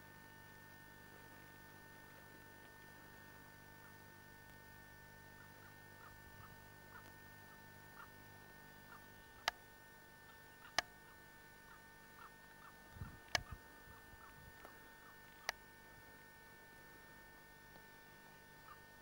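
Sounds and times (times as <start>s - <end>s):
camcorder mechanism hum and whine: 0.0s - 19.0s
sharp clicks: 10.6s - 10.9s, 13.2s - 13.6s.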